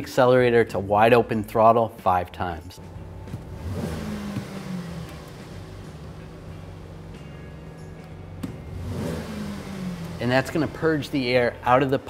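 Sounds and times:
car engine revving: 2.9s - 12.0s.

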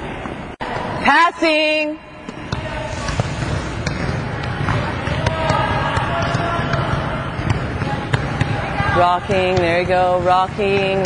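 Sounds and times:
volleyballs slapping and thudding: 2.2s - 11.0s.

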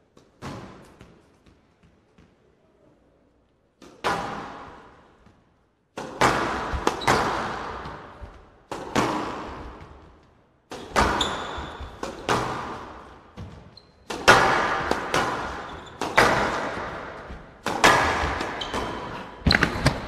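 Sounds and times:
squash ball hitting rackets and walls: 0.0s - 2.6s, 3.7s - 20.0s
shoe squeaks on court floor: 6.9s - 7.5s, 11.0s - 12.0s, 13.5s - 14.1s, 15.4s - 16.6s, 18.4s - 19.9s.

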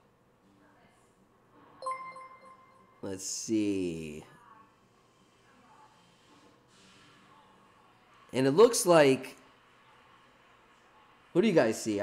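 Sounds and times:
bright alert chime: 1.8s - 3.2s.

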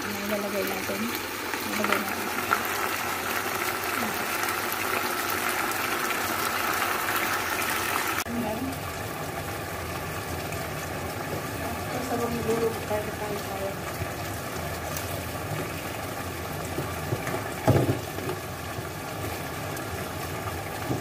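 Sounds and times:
chicken frying in a pan: 0.0s - 21.0s.

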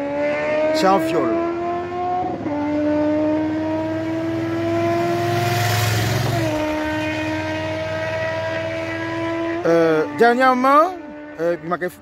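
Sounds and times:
rush of traffic: 0.0s - 12.0s
vehicle engine droning: 0.0s - 12.0s.

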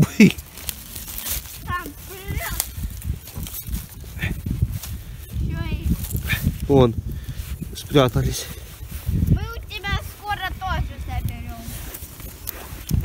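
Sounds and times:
pine needles and twigs crackling: 0.0s - 13.0s
children's voices: 1.6s - 2.9s, 5.3s - 6.1s, 9.2s - 12.0s.

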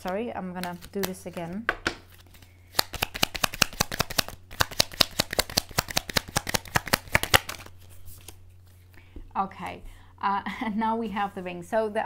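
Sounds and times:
card deck being shuffled: 0.0s - 8.9s.

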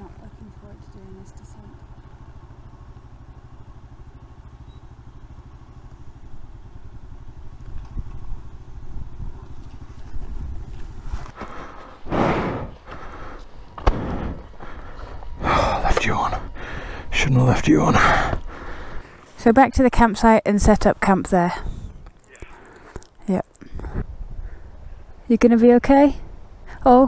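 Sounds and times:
motorcycle engine idling: 0.0s - 27.0s
loud engine bursts: 11.4s - 19.2s.

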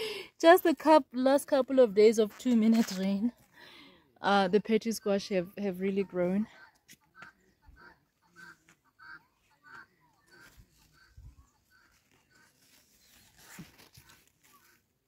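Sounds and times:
rustling of leaves being handled: 11.8s - 15.0s.

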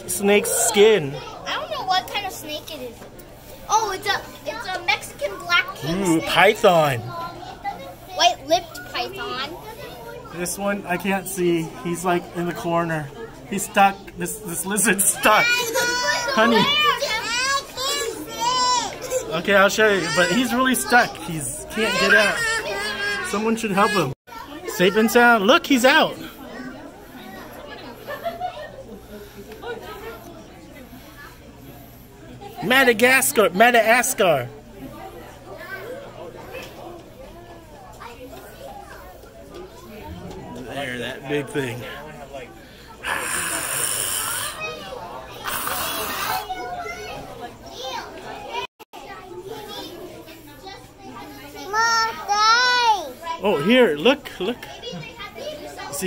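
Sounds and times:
background chatter: 0.0s - 56.0s
children and adults talking: 0.0s - 56.0s.

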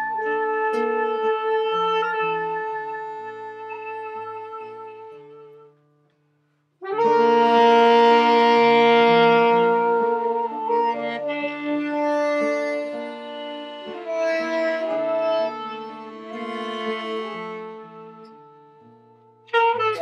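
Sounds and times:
saxophones: 0.0s - 5.8s, 6.8s - 20.0s
guitar: 0.0s - 20.0s
accordion: 6.9s - 20.0s.

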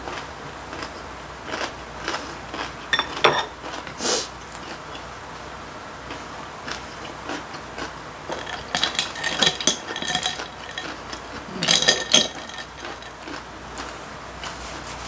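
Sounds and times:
spoon clinking against glass: 2.9s - 3.5s, 8.3s - 11.0s, 11.6s - 13.2s.

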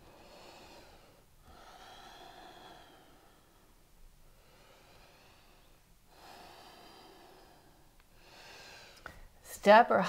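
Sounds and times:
faint breathing: 0.0s - 9.4s.

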